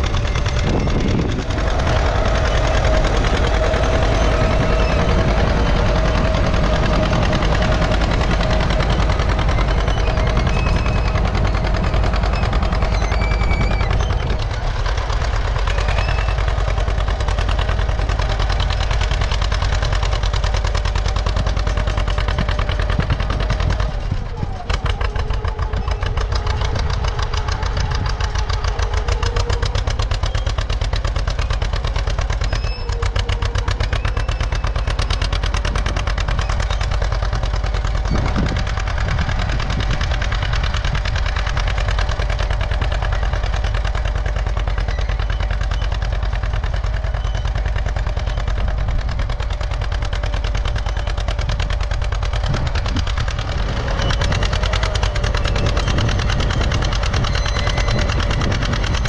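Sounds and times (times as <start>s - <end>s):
tractor engine popping under load: 0.0s - 59.0s.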